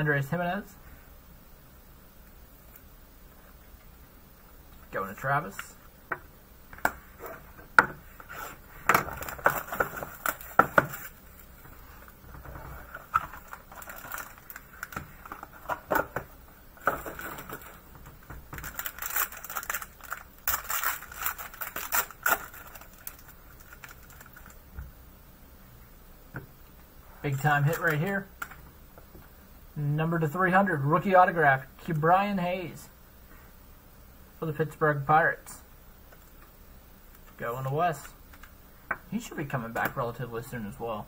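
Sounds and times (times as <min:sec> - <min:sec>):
foil wrapper crinkling and tearing: 0:08.4 - 0:11.5, 0:12.8 - 0:16.0, 0:18.5 - 0:24.6.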